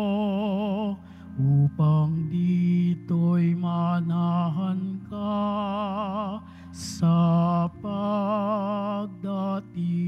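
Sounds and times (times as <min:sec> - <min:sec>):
person singing with vibrato: 0:00.0 - 0:10.0
sustained accompaniment chords: 0:00.0 - 0:10.0.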